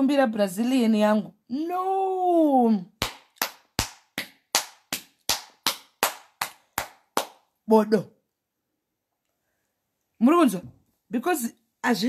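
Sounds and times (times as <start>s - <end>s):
hands clapping: 3.0s - 7.5s.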